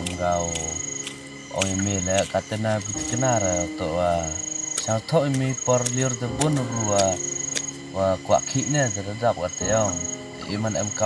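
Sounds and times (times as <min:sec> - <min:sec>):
man speaking: 0:00.0 - 0:00.8, 0:01.5 - 0:07.2, 0:08.0 - 0:11.0
high thin insect trill: 0:00.0 - 0:11.0.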